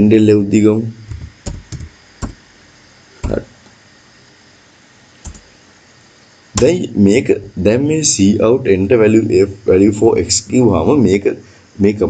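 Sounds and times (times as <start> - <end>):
computer keyboard keystrokes: 1.1 - 2.4, 5.2 - 5.5.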